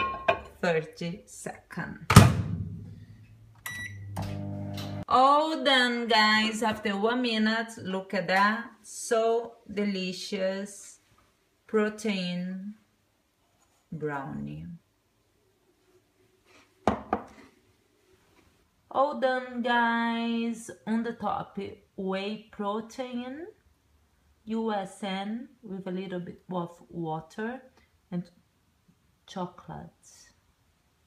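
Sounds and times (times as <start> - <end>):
microwave beep: 3.6 - 5.0
microwave humming: 3.6 - 5.0.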